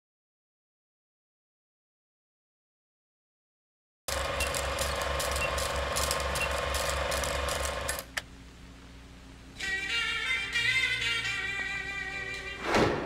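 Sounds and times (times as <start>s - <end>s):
film projector clicking: 4.1s - 8.2s.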